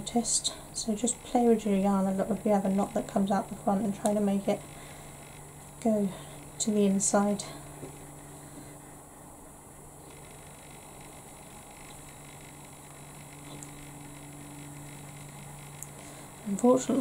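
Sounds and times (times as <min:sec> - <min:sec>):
faint steady hum: 0:00.0 - 0:17.0.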